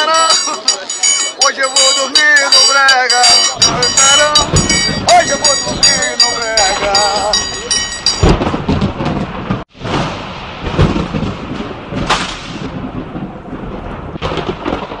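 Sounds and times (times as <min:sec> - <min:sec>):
voice: 0:00.0 - 0:08.0
metal triangle struck: 0:00.0 - 0:08.4
loud noisy rumble: 0:03.6 - 0:15.0.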